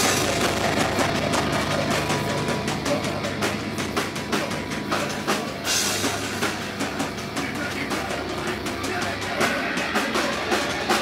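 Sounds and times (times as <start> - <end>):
drum strokes: 0.0 - 11.0
live band playing loudly: 0.0 - 11.0.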